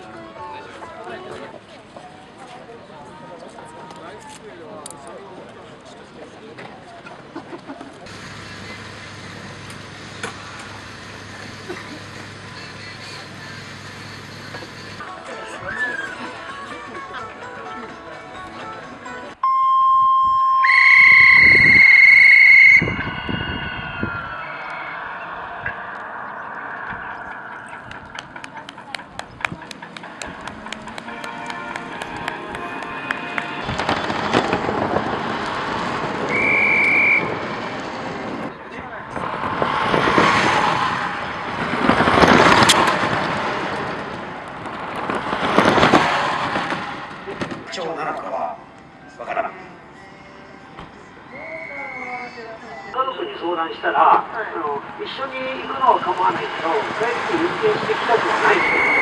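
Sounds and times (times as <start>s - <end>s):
electric cars passing: 5.2s - 59.0s
electronic signal beeps: 19.4s - 27.8s, 58.4s - 59.0s.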